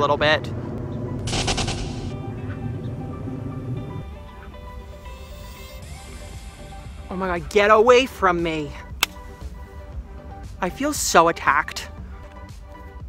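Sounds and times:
plane rumbling overhead: 0:00.0 - 0:07.8
steady musical tones: 0:01.0 - 0:07.6
rapid rattling burst: 0:01.3 - 0:02.1.

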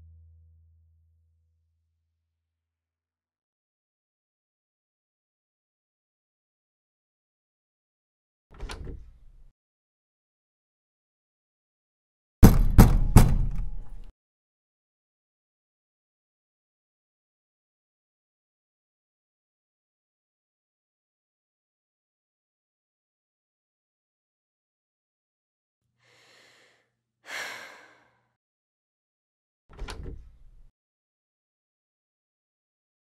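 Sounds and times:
loud ringing knocks: 0:12.4 - 0:14.0
person breathing and sighing: 0:26.0 - 0:28.3.

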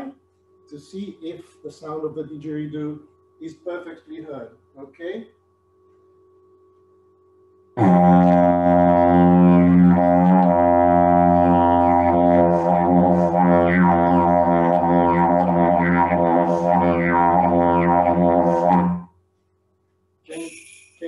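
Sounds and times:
didgeridoo drone: 0:07.8 - 0:19.1.

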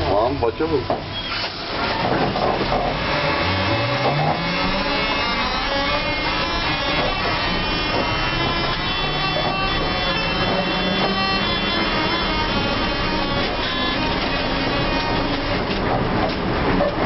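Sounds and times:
electric motor whining: 0:01.3 - 0:15.9.

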